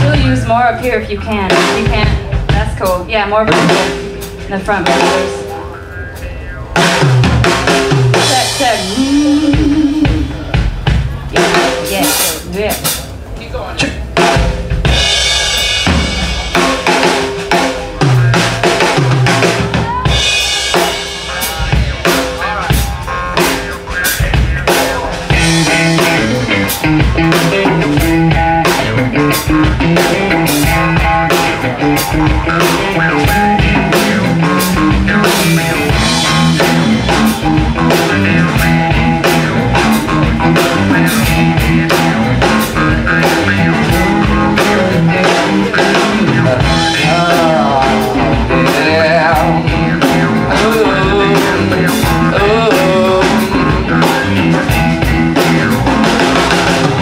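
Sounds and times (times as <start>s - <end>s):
bass guitar: 0.0s - 57.0s
drum kit hits and fills: 0.0s - 57.0s
electric guitar: 0.0s - 57.0s.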